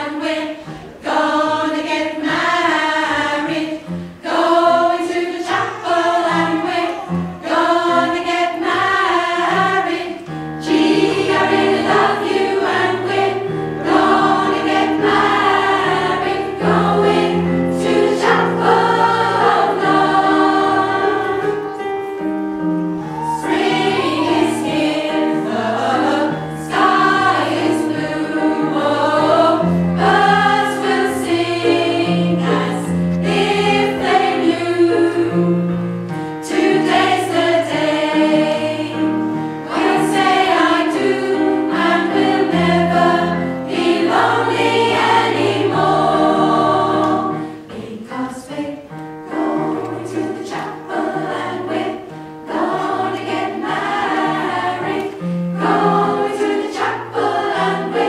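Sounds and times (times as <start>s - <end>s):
choir singing in harmony: 0.0s - 58.0s.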